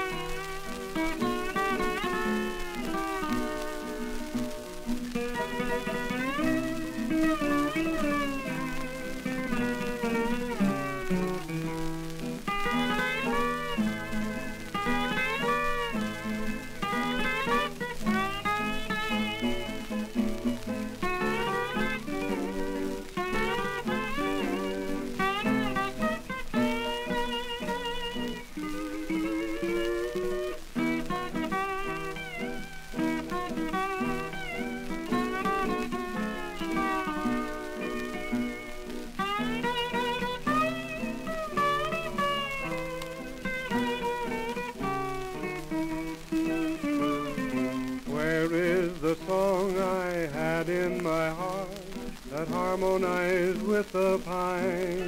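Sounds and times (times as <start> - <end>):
steel guitars playing slow melody: 0.0 - 55.0.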